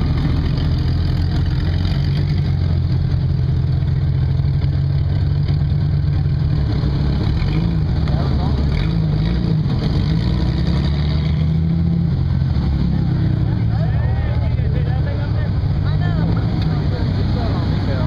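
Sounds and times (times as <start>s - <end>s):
off-road vehicle engine running: 0.0s - 18.0s.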